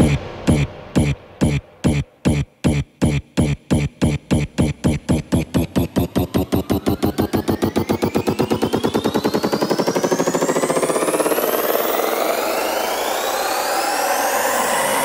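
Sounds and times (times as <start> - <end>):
drum roll: 0.0 - 10.0
electronic dance music build-up: 0.0 - 15.0
rising synth sweeps: 0.0 - 15.0.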